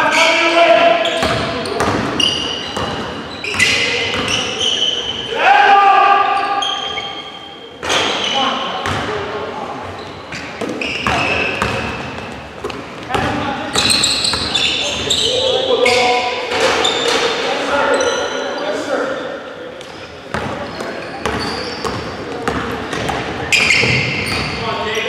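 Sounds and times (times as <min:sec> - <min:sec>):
sneaker squeaks: 0:00.0 - 0:05.3, 0:06.3 - 0:25.0
players shouting: 0:04.6 - 0:06.6.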